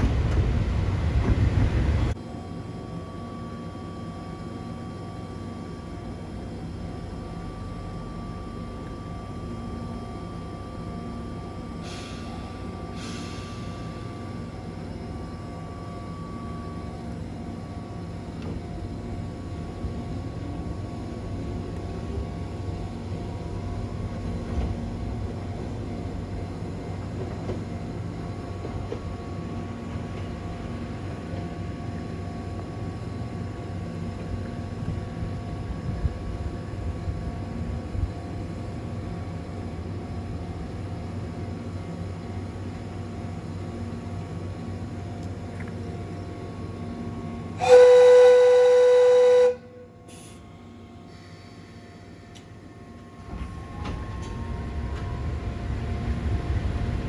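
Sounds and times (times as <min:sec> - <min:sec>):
electric locomotive rumble: 0:00.0 - 0:57.0
locomotive whistle blast: 0:47.6 - 0:49.8.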